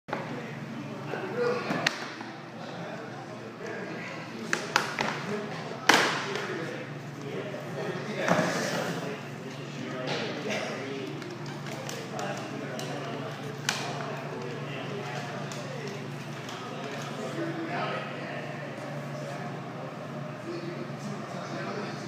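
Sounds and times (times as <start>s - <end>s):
indistinct talking: 0.1s - 22.0s.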